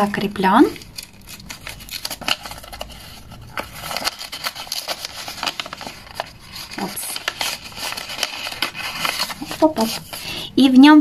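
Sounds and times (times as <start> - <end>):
paper envelope rustling and crinkling: 0.7 - 10.5.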